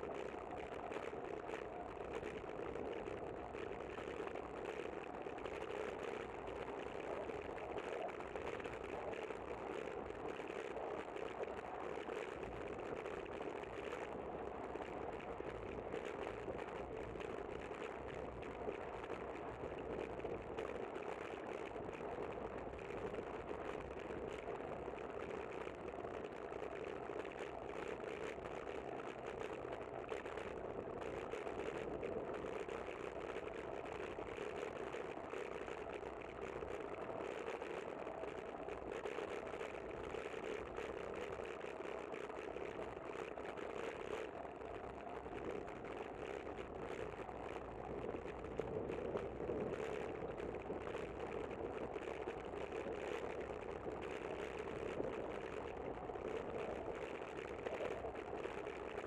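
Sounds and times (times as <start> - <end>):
bicycle rolling noise: 0.0 - 59.0
wind: 0.0 - 59.0.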